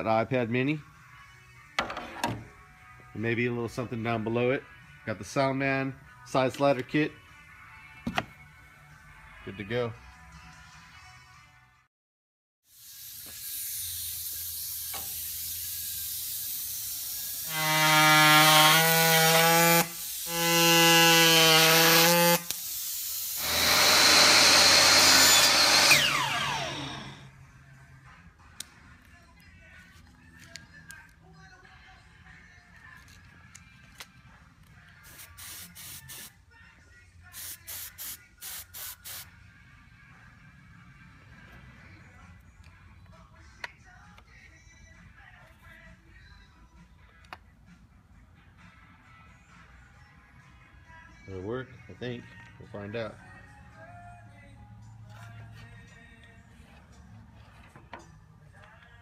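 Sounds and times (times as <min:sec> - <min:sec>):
motor-driven power tool running: 0:21.8 - 0:27.3
cutting tool running: 0:23.3 - 0:27.3.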